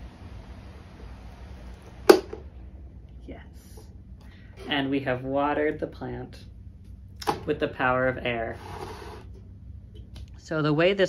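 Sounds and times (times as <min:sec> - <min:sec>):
electric fan blowing: 0:00.0 - 0:11.0.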